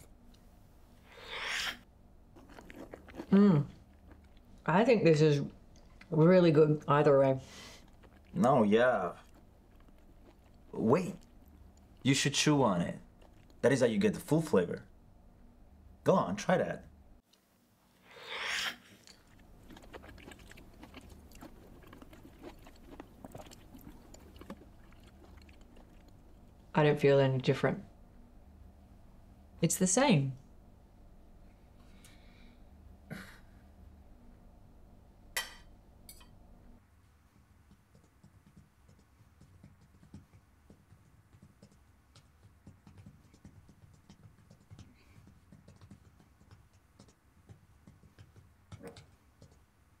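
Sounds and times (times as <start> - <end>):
chewing with mouth clicks: 2.3 - 4.6, 7.5 - 13.6, 18.8 - 26.7, 37.6 - 49.7
laptop keyboard typing: 37.7 - 49.7.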